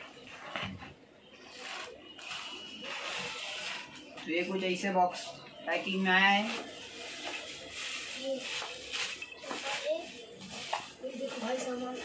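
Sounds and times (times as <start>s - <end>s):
plastic bag rustling and tearing: 1.4s - 4.0s.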